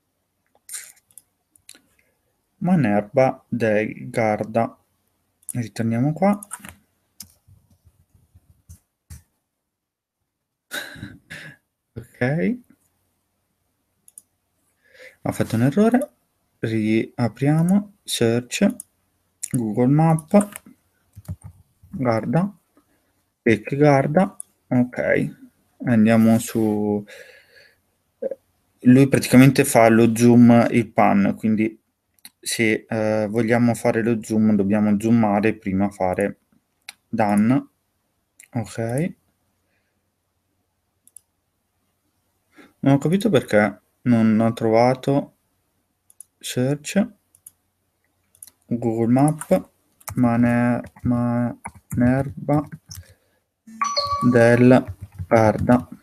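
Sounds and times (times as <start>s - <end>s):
computer mouse clicks: 0.5s - 1.8s, 6.3s - 9.3s, 14.1s - 14.3s, 20.2s - 21.6s, 41.0s - 41.3s, 46.1s - 46.4s, 47.3s - 47.6s, 48.2s - 48.7s
computer mouse click: 14.1s - 14.3s, 41.0s - 41.3s, 46.1s - 46.3s, 47.3s - 47.6s, 48.3s - 48.6s.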